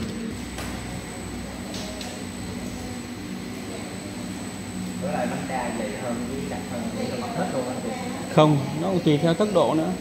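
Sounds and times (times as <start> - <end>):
machine droning hum: 0.0 - 10.0.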